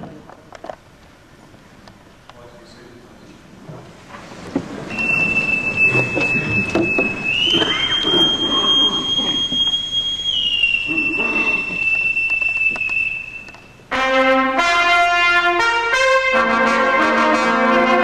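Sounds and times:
bosun's pipe call: 4.9 - 13.8.

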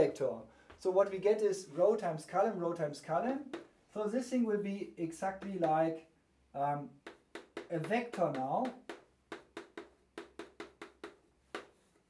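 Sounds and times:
chalk tapping on blackboard: 3.5 - 3.7, 5.4 - 5.9, 7.0 - 12.0.

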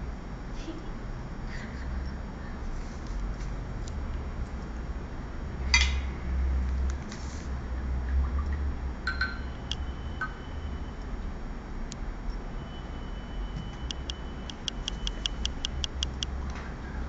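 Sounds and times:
low steady hum: 7.6 - 17.0
quick evenly spaced ticks: 13.8 - 16.4.

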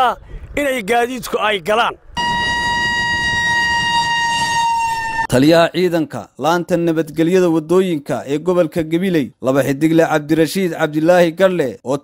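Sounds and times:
road noise: 0.0 - 5.5
vehicle horn blast: 2.2 - 5.3.

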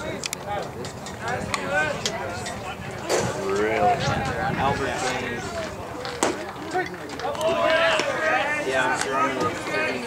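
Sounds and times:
overlapping conversation: 0.0 - 10.0.

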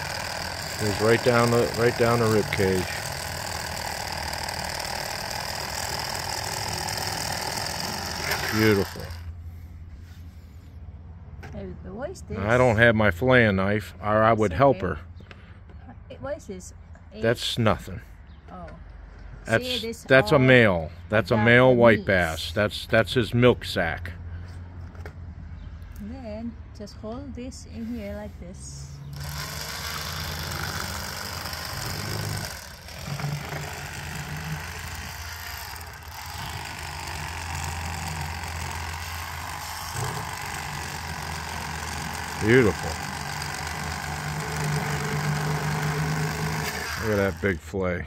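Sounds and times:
electric knife buzzing: 0.0 - 9.3, 29.1 - 47.6.

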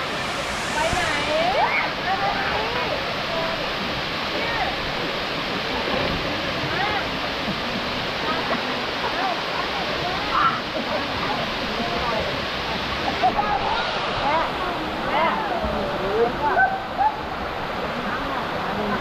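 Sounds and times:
people's voices: 0.0 - 19.0
waterfall rushing into pool: 0.0 - 19.0.

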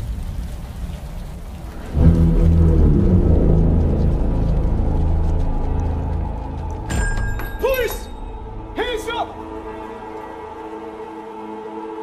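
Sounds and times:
steady rain hiss: 0.0 - 6.9.

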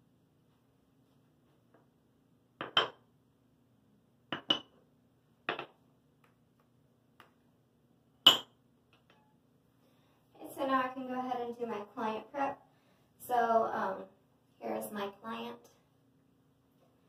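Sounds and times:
cups clinking on a table: 2.6 - 3.1, 4.3 - 4.8, 5.5 - 5.8, 8.3 - 9.2.

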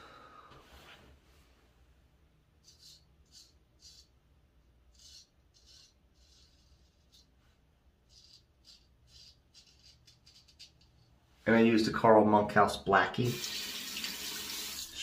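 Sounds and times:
razor scraping stubble: 2.6 - 4.1, 4.9 - 7.3, 8.0 - 11.1.

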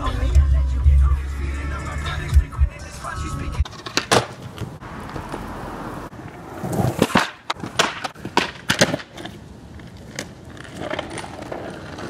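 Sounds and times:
skateboard wheels rolling on pavement: 1.6 - 12.0
skateboard clacking on ground: 3.6 - 12.0.

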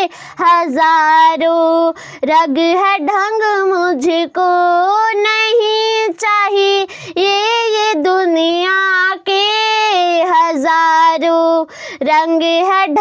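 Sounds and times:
boy singing unaccompanied: 0.0 - 13.0.

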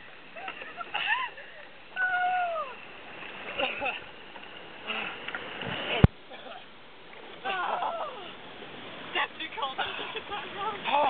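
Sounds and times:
river water rushing: 0.0 - 11.0.

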